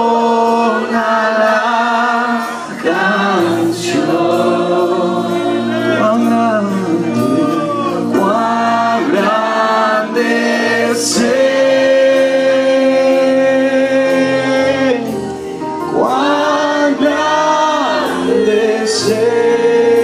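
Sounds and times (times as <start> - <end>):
congregation singing: 0.0 - 20.0.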